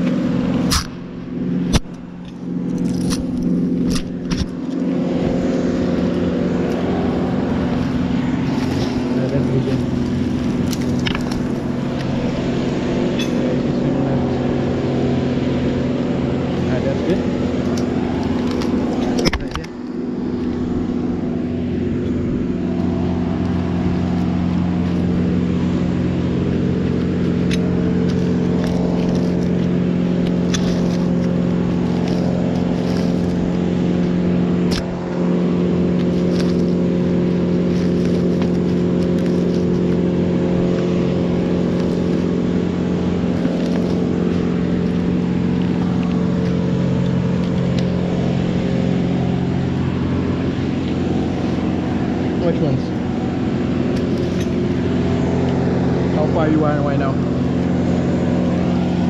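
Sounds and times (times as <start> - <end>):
engine running steadily: 0.0 - 59.0.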